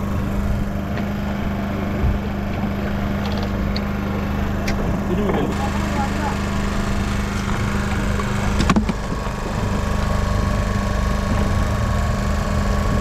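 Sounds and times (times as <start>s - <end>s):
boat engine droning: 0.0s - 13.0s.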